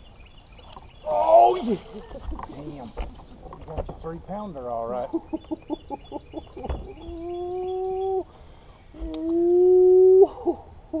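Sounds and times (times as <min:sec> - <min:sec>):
man laughing in high cries: 0:05.1 - 0:08.2, 0:09.3 - 0:11.0.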